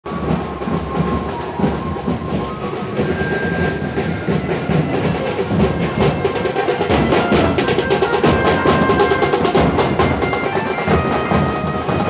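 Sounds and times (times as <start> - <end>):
drum ensemble playing: 0.1 - 12.0.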